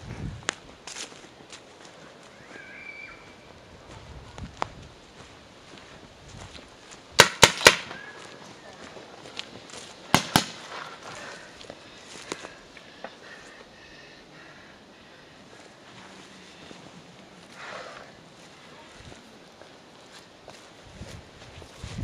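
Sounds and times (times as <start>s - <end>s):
paintball marker shots: 7.2s - 8.1s, 10.1s - 10.7s.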